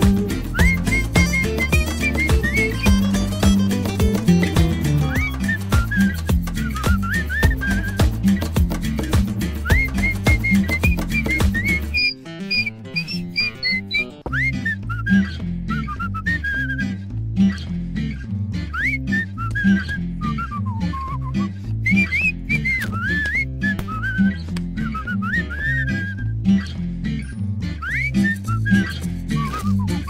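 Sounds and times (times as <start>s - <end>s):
whistled melody: 0.0s - 17.0s, 18.7s - 26.4s, 27.8s - 30.0s
guitar: 0.0s - 30.0s
plucked bass line: 0.0s - 30.0s.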